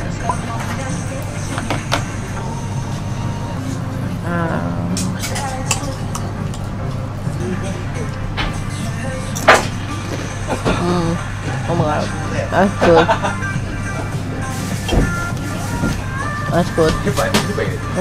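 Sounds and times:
restaurant music: 0.0s - 18.0s
restaurant voices: 0.0s - 18.0s.

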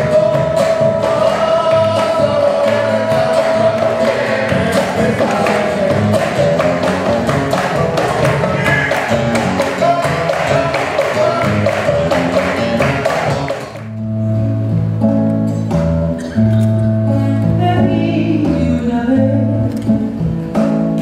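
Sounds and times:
hand percussion on a cajon: 0.0s - 13.9s
nylon-string guitar: 0.0s - 21.0s.

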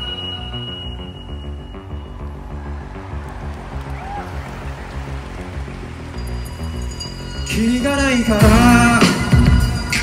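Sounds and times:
high steady tones: 0.0s - 2.5s, 6.0s - 10.0s
live instrumental band music: 6.1s - 10.0s.

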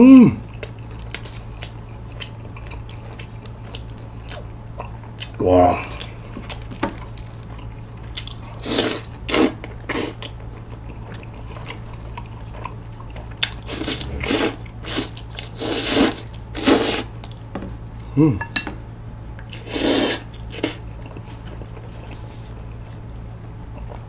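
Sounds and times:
slurping and chewing noodles: 0.5s - 17.4s, 19.5s - 24.0s.

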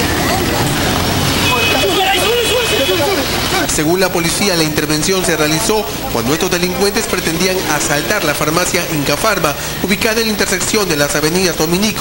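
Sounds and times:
people shouting in street: 0.0s - 3.7s
street noise: 0.0s - 12.0s
high steady tone: 0.6s - 10.0s.

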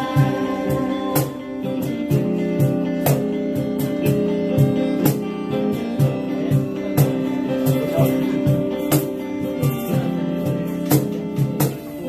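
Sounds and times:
acoustic guitars strumming chords: 0.0s - 12.0s
cajon drum beat: 0.0s - 12.0s.

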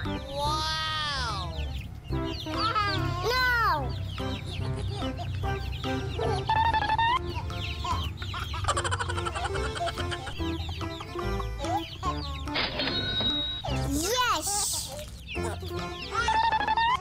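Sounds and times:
baby chicks cheeping: 0.0s - 17.0s
background music: 0.0s - 17.0s.

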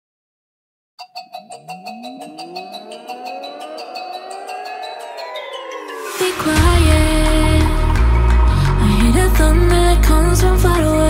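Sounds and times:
electronic riser with ticks: 1.0s - 10.5s
music: 1.0s - 11.0s.

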